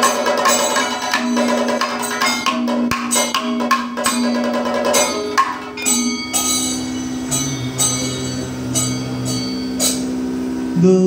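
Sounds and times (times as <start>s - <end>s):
gong striking: 0.0s - 10.8s
hand cymbals striking: 0.0s - 11.0s
sustained drone: 4.0s - 11.0s.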